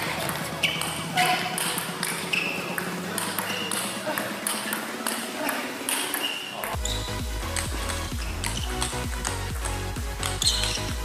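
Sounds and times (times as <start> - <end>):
music with heavy bass: 0.0 - 5.9, 6.8 - 11.0
table tennis ball rally: 0.0 - 11.0.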